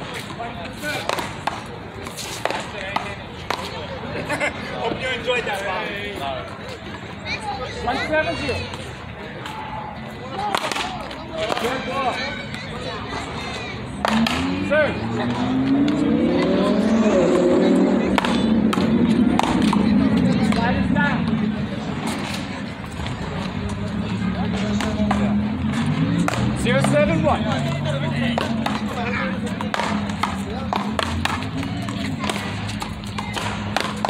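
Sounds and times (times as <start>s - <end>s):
vehicle engine accelerating: 13.8s - 34.0s.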